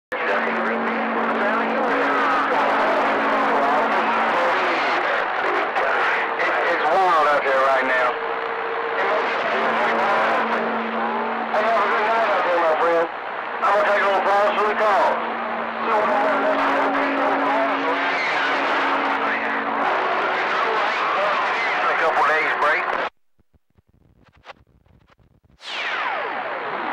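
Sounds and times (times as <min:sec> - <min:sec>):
radio voices: 0:00.1 - 0:23.1
radio hiss: 0:00.1 - 0:26.9
steady low tones: 0:00.1 - 0:26.9.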